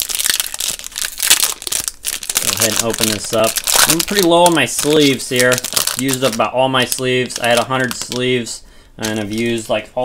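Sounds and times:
foil wrapper crinkling: 0.0s - 8.4s.

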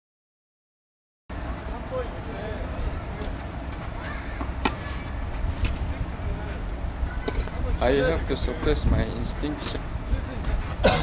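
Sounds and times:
distant voices: 1.3s - 11.0s
tennis ball hits off racket: 4.4s - 4.8s.

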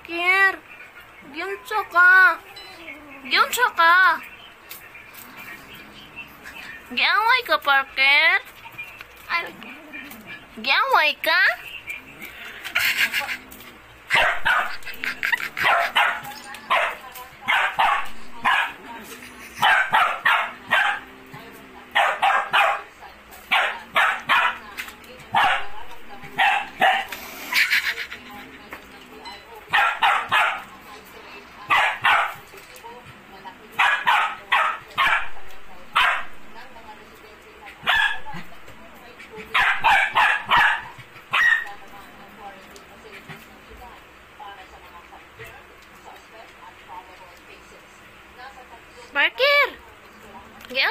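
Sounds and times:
small dog barking: 14.1s - 14.9s, 15.6s - 18.8s, 19.6s - 21.2s, 21.9s - 24.7s, 25.3s - 27.2s, 29.7s - 30.7s, 31.7s - 32.5s, 33.8s - 36.4s, 37.8s - 38.5s, 39.5s - 41.8s.

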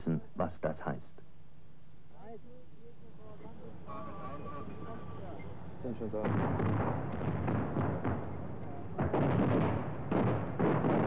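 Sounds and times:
military weapons fire: 6.2s - 11.0s.

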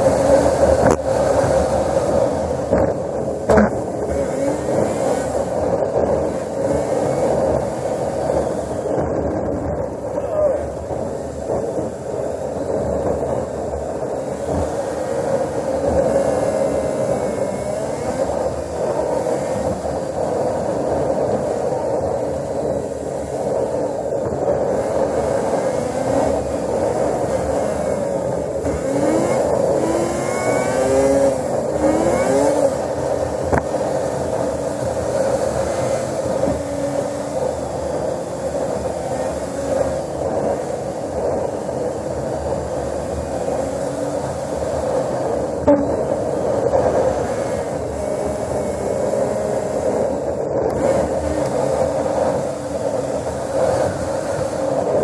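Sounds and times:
vehicle engine and road noise: 0.0s - 55.0s.

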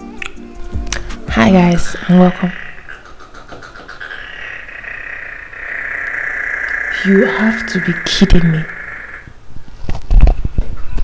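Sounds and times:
high-pitched trilling call: 1.4s - 9.4s.

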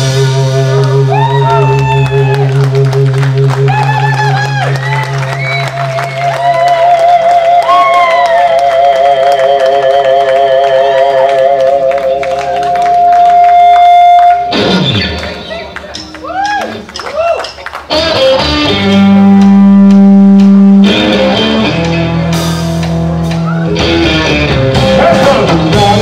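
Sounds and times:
bass: 0.0s - 26.0s
electric guitar lead notes: 0.0s - 26.0s
audience clapping and cheering: 0.8s - 21.0s.

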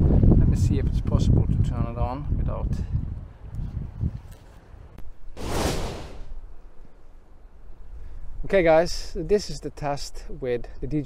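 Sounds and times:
wind rumble on microphone: 0.0s - 5.0s
loud rustle: 5.4s - 6.4s.

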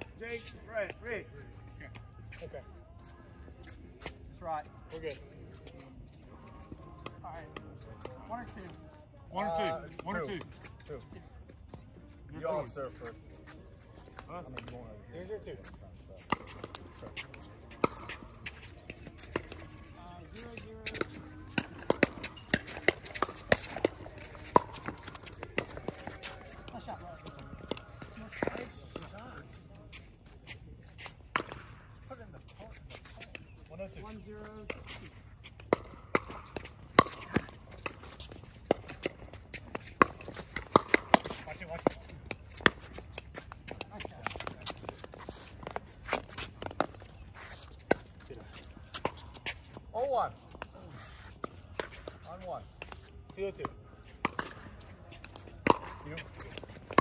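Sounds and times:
paddles hitting plastic ball: 35.6s - 49.5s, 52.8s - 57.0s.

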